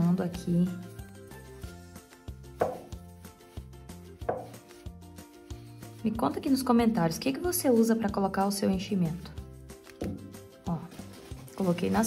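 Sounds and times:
soft background music: 0:00.0 - 0:12.0
sharp knocks: 0:04.3 - 0:04.6.

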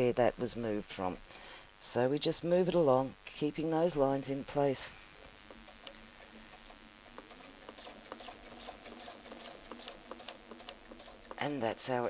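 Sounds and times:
sewing machine stitching: 0:07.3 - 0:11.5.

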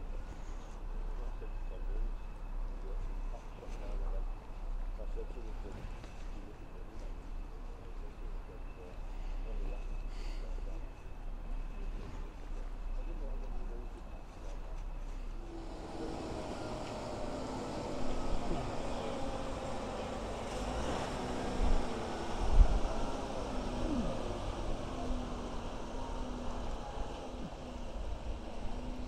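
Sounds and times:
lorry diesel engine drone: 0:00.0 - 0:29.0.

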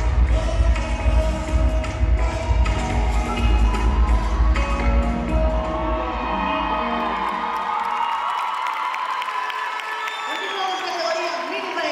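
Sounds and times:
dance music with heavy bass: 0:00.0 - 0:05.8
crowd cheering and whooping: 0:02.8 - 0:11.9.

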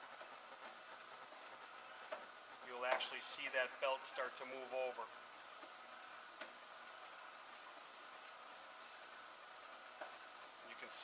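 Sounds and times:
belt conveyor running: 0:00.0 - 0:11.0.

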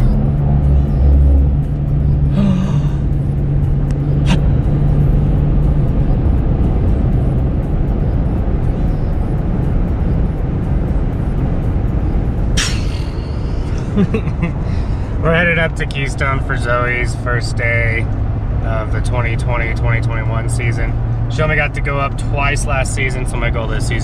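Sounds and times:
car road and engine rumble: 0:00.0 - 0:24.0.

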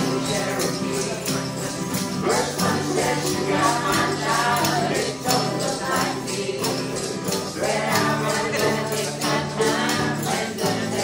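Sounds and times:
acoustic guitar strumming: 0:00.0 - 0:11.0
banjo strumming: 0:00.0 - 0:11.0
group of voices singing: 0:00.0 - 0:11.0.

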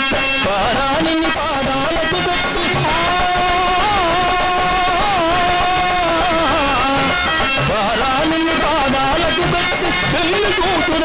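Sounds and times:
live devotional music: 0:00.0 - 0:11.0
singer holding long note: 0:00.5 - 0:11.0.

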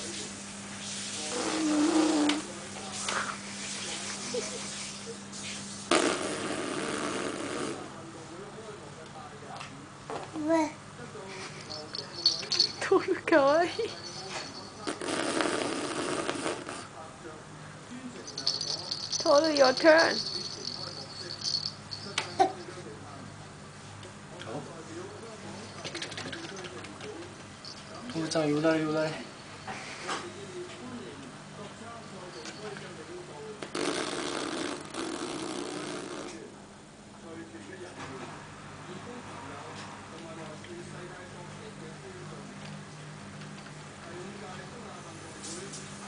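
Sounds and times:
electric fan motor hum: 0:17.1 - 0:29.6.

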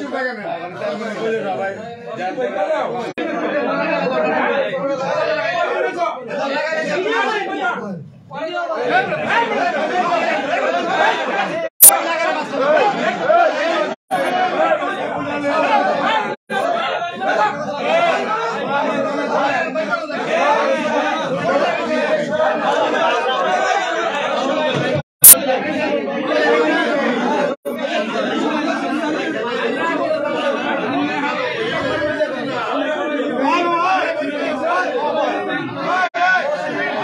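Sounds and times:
people talking in a hall: 0:00.0 - 0:37.0.

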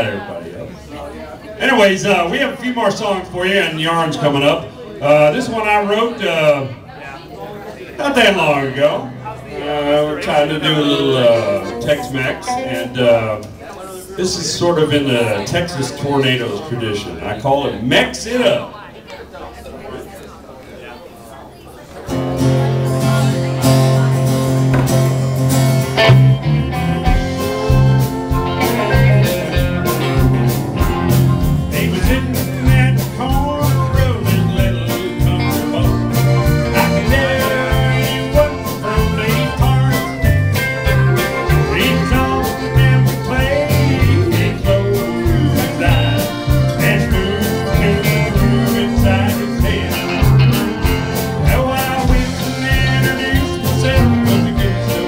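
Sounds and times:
live country band playing: 0:01.6 - 0:06.8, 0:08.0 - 0:18.6, 0:22.0 - 0:55.0
guitars: 0:08.1 - 0:13.6, 0:22.1 - 0:55.0
drums: 0:22.1 - 0:55.0
electric bass: 0:22.2 - 0:55.0.

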